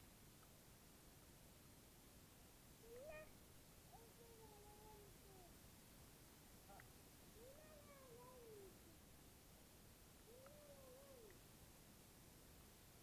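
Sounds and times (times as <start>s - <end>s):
faint cat meows: 2.8s - 5.5s, 6.7s - 8.9s, 10.3s - 11.4s.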